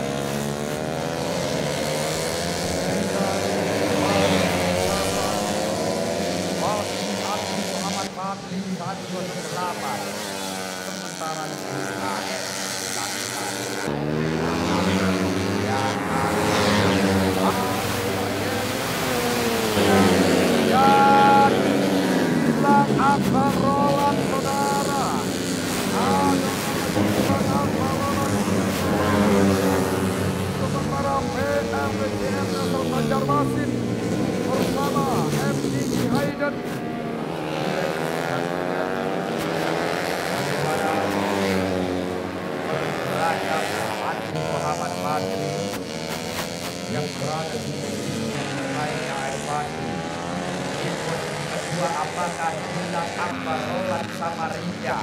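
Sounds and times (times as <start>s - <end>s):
motorcycles racing past: 0.0s - 55.0s.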